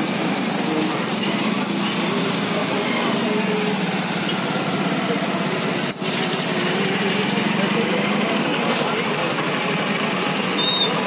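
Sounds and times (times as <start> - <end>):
crowd voices: 0.0 - 11.0
truck and motorcycle engines: 0.0 - 11.0.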